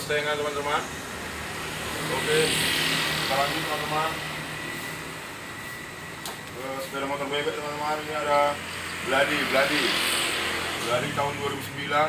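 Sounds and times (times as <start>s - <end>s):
traffic hiss of passing vehicles: 0.0s - 12.0s.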